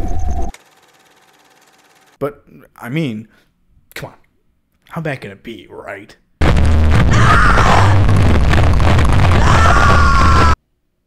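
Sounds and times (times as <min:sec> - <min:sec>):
heavy low rumble: 0:06.4 - 0:09.4.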